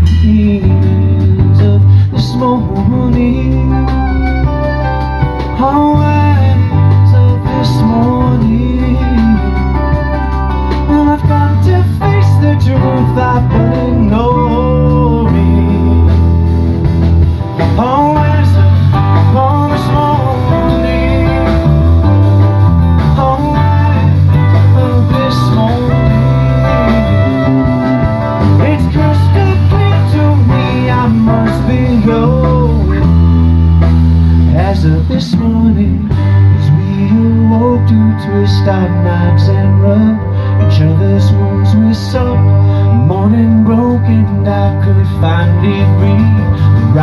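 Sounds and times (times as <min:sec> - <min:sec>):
acoustic guitar: 0:00.0 - 0:47.0
electric bass: 0:00.0 - 0:47.0
saxophone solo: 0:03.7 - 0:05.6, 0:25.8 - 0:29.8.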